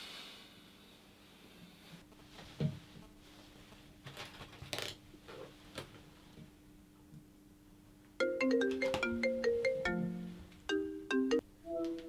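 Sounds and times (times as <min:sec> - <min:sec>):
marimba phone ringtone: 0:08.2 - 0:11.8.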